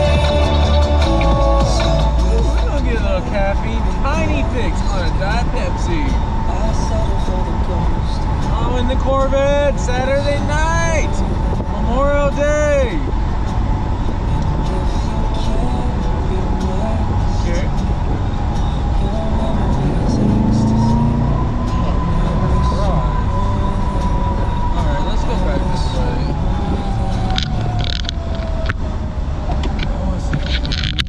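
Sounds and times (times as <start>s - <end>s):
car engine running: 0.0s - 31.0s
road noise: 0.0s - 31.0s
wind noise: 0.0s - 31.0s.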